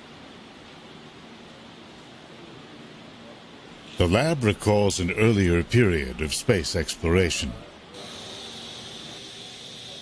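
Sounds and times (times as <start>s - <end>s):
thin high whine: 3.8s - 10.0s
machine hiss: 7.9s - 10.0s.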